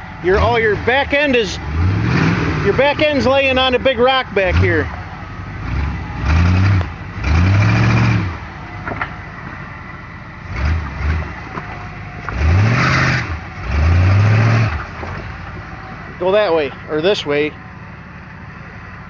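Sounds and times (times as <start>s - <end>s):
off-road engine revving: 0.0s - 19.0s.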